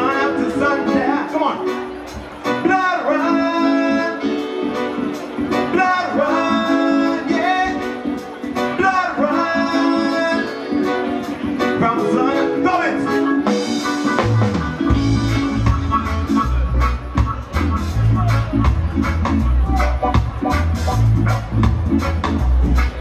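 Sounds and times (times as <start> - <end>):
guitar: 0.0 - 23.0
person singing: 5.5 - 11.0
steady drum beat: 13.4 - 23.0.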